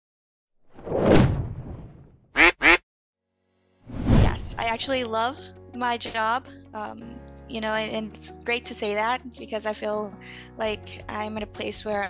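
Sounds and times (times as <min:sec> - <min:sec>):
whoosh: 0:00.7 - 0:02.2, 0:03.9 - 0:04.7
cartoon duck quacks: 0:02.4 - 0:02.8.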